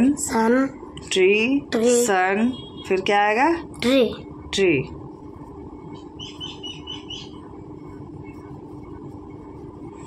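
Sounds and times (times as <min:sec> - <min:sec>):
steady low hum: 0:00.0 - 0:10.0
bird chirping: 0:05.9 - 0:07.5.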